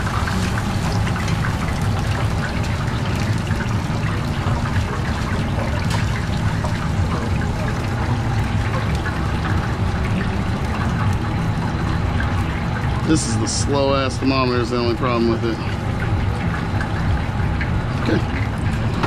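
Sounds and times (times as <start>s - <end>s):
constant low hum: 0.0s - 19.0s
deep fryer bubbling and crackling: 0.0s - 19.0s.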